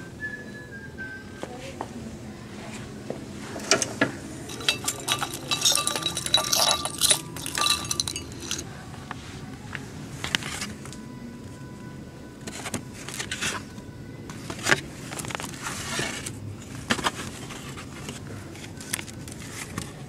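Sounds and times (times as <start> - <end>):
small items clinking against glass bowl: 4.5 - 8.7.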